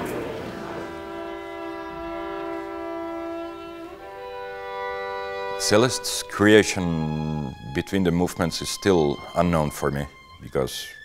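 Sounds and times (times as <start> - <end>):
violin bowed note: 0.0 - 11.0.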